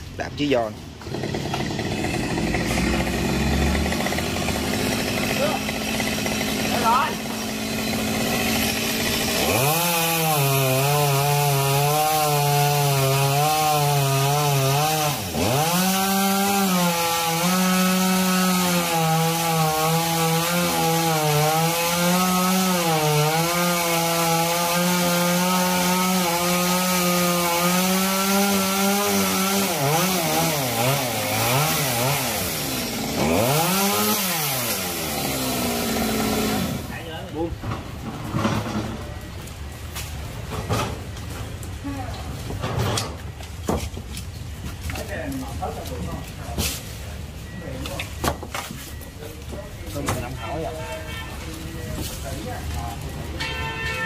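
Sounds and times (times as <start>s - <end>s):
chainsaw cutting branch: 1.0s - 37.0s.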